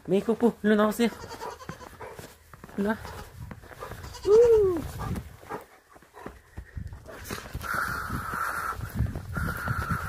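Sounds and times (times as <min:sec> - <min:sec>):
young goat bleating: 0:00.9 - 0:02.0, 0:04.0 - 0:04.8.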